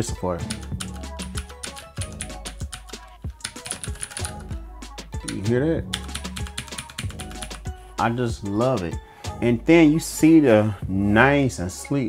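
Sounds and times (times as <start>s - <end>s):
clicky mechanical keyboard typing: 0.5s - 4.4s, 5.9s - 7.6s.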